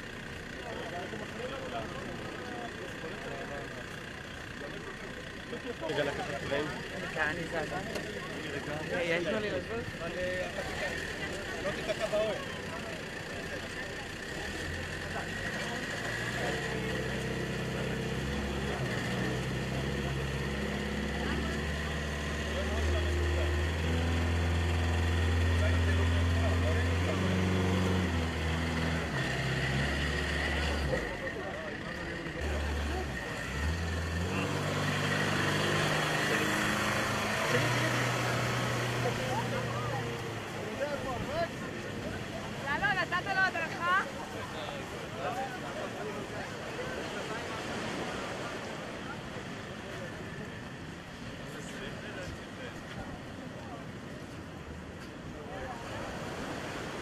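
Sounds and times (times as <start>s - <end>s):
jeep engine speeding up: 5.6s - 44.6s.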